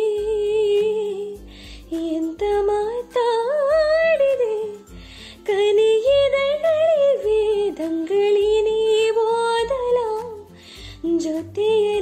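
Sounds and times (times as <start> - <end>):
soft instrumental accompaniment: 0.0 - 12.0
woman singing with vibrato: 0.0 - 12.0.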